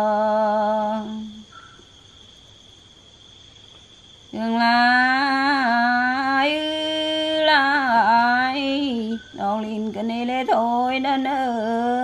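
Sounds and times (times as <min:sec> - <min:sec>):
cricket trilling: 0:00.0 - 0:12.0.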